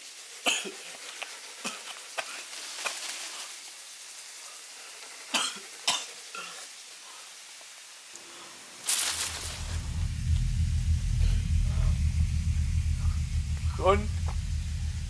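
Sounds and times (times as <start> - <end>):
low steady rumble: 8.9 - 15.0
sudden loud burst of noise: 8.9 - 15.0.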